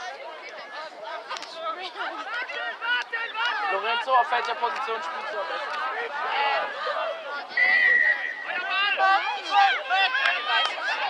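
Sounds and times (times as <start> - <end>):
players and onlookers shouting: 0.5 - 11.0
referee's whistle blast: 7.6 - 8.5.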